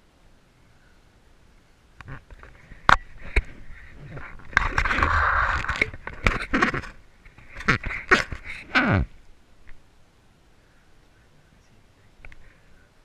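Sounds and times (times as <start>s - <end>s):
rustling: 2.0s - 9.9s.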